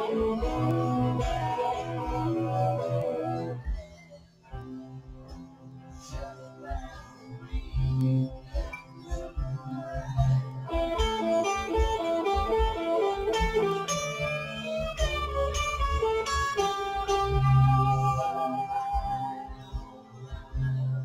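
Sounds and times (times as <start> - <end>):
electric guitar melody: 0.0 - 5.6, 7.4 - 21.0
backing track with beats: 0.0 - 21.0.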